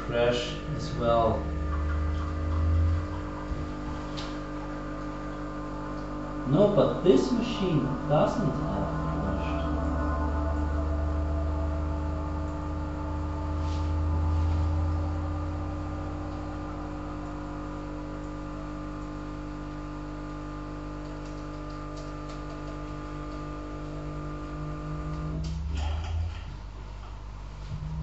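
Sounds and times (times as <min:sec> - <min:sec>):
electronic drone chord: 0:00.0 - 0:21.0, 0:23.8 - 0:28.0
deep low hum: 0:00.0 - 0:28.0.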